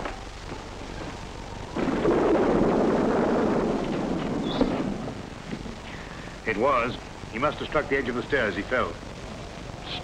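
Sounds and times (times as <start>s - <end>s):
thunder rumbling: 0.8s - 5.9s.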